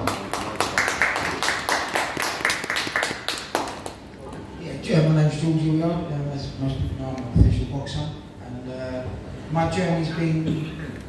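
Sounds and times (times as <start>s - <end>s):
small audience clapping: 0.0s - 4.1s.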